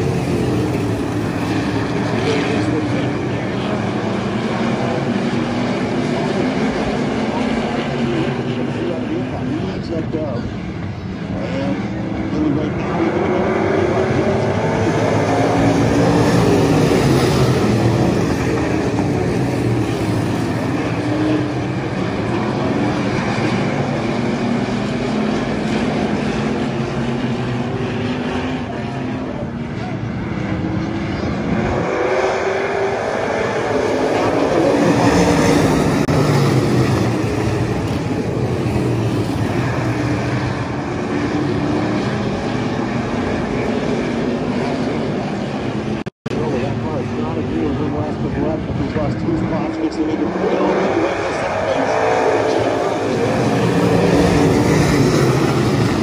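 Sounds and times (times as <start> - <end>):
race car engines: 0.0 - 56.0.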